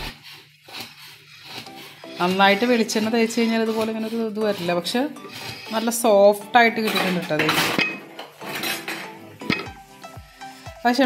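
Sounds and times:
ceramic plate scraping on stone: 0.0 - 9.8
plate clinking: 6.7 - 9.8.

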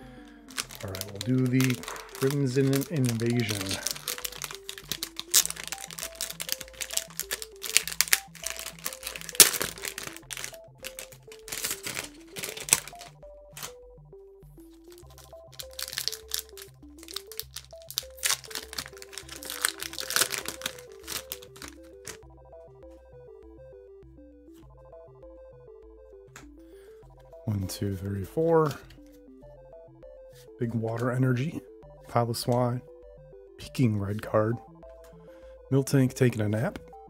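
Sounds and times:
background music: 0.0 - 37.0
foil wrapper crinkling: 0.4 - 13.8, 14.8 - 22.2.

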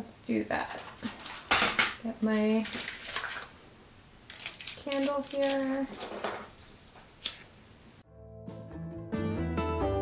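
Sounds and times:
aluminium foil crinkling: 2.3 - 3.6, 4.3 - 6.5.

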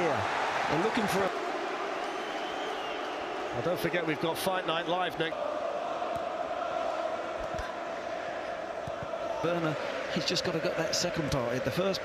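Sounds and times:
stadium crowd hum: 0.0 - 12.0.

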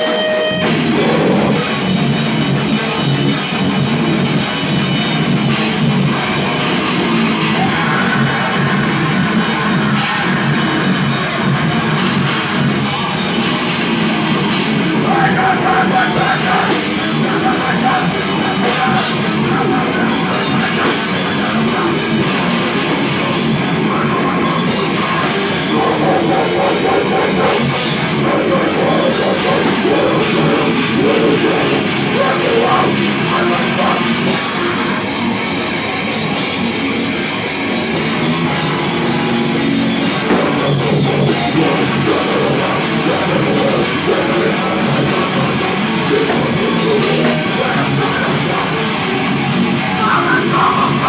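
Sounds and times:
drum kit: 0.0 - 51.0
heavy rock band playing live: 0.0 - 51.0.

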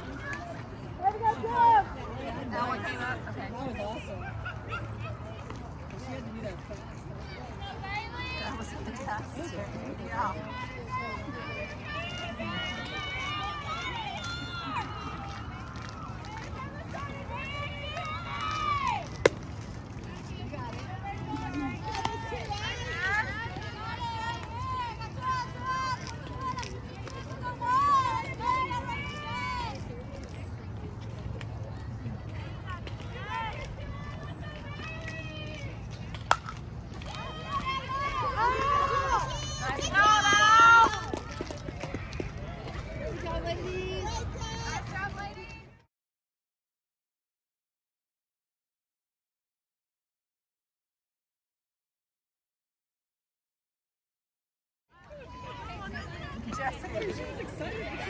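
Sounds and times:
voices calling out and cheering: 0.0 - 45.9, 54.9 - 58.0.

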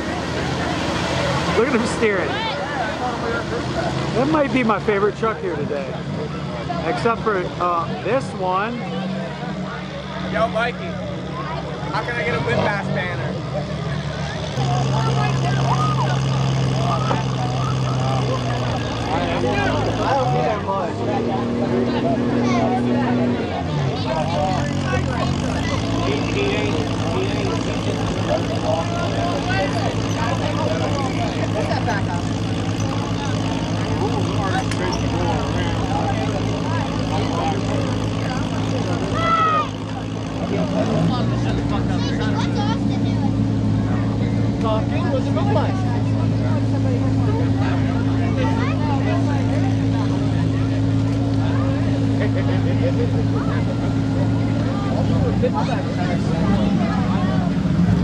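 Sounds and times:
crowd chatter: 0.0 - 58.0
truck engine running: 0.0 - 58.0.

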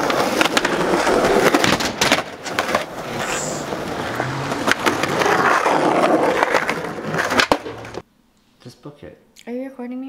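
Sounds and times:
skateboard clacks: 0.0 - 8.0
skateboard wheels rolling on concrete: 0.0 - 8.1.

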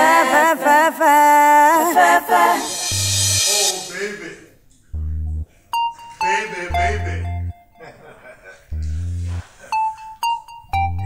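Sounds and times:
deep synthesised bass notes: 2.8 - 3.5, 4.9 - 5.5, 6.7 - 7.6, 8.7 - 9.5
wavering voice: 6.2 - 7.5.

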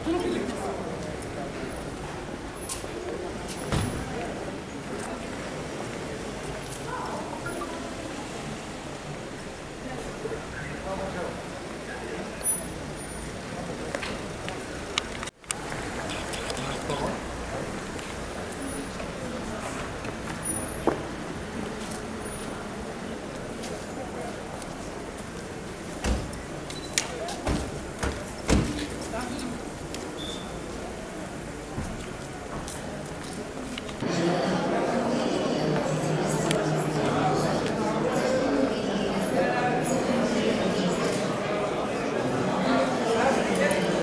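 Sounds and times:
faint voices: 0.0 - 44.0.

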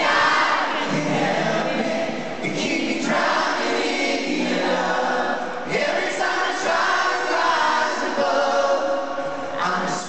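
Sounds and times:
crowd singing along: 0.0 - 10.0.

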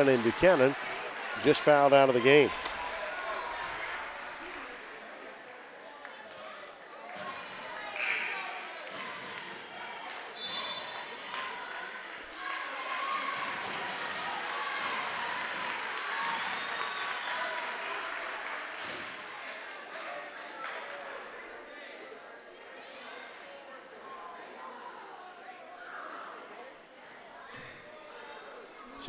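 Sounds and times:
crowd talking: 0.0 - 29.0.

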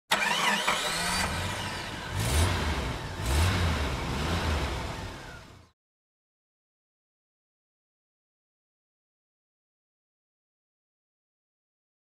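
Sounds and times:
vehicle engine starting and revving: 0.1 - 5.7.

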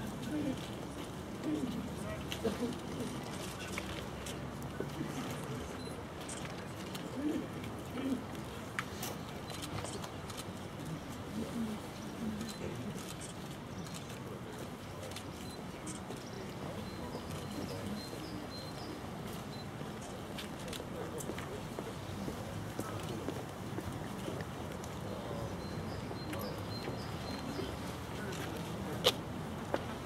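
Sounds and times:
faint scattered voices: 0.0 - 30.0
outdoor background noise: 0.0 - 30.0.

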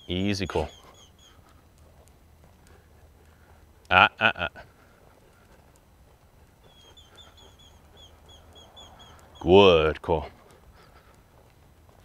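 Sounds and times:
small bird chirping: 0.0 - 2.9, 6.4 - 9.6.

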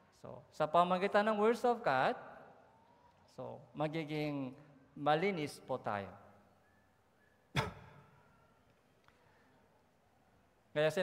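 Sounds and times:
man coughing: 7.5 - 8.3.

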